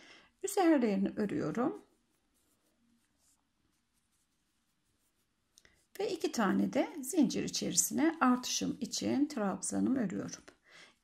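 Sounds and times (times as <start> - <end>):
crochet hook rubbing yarn: 0.4 - 9.3.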